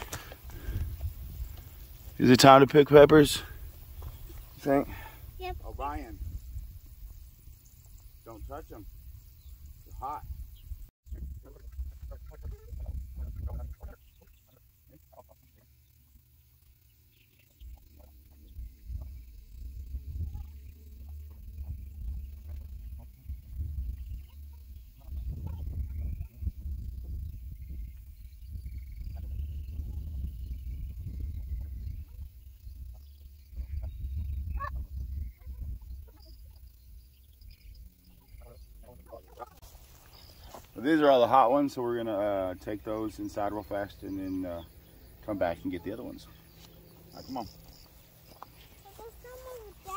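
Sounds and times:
gusty wind on microphone: 0.0s - 1.9s, 5.2s - 7.6s, 8.8s - 14.0s, 18.4s - 37.9s.

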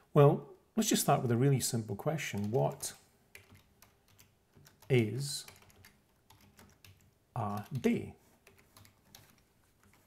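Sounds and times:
faint keyboard typing: 2.0s - 10.0s.

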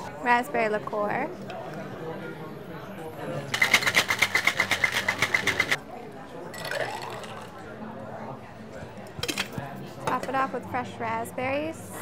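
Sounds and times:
ice rattling in cocktail shaker: 3.5s - 5.8s, 6.5s - 7.5s.

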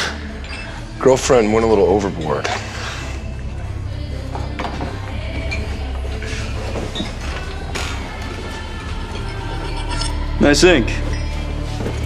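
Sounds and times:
bar-room ambience: 0.0s - 12.0s
low sustained background score: 0.0s - 12.0s.

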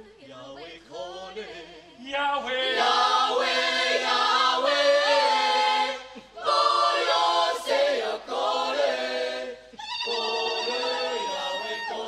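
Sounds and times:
mixed choir singing a cappella: 0.0s - 12.0s.

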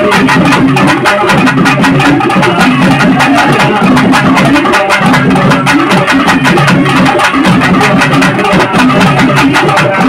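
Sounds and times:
fast drumming: 0.0s - 10.0s.

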